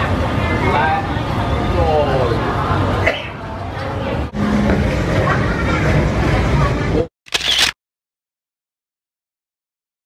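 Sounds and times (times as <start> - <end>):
low rumble of traffic: 0.0 - 7.1.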